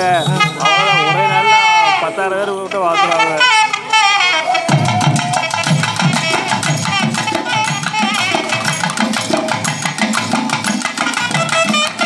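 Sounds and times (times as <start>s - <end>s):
reed pipes playing melody: 0.0s - 9.2s
drum strokes: 0.0s - 12.0s.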